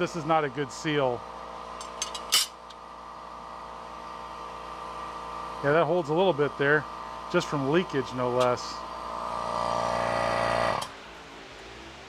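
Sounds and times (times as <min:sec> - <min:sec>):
vacuum pump humming: 0:00.0 - 0:12.0.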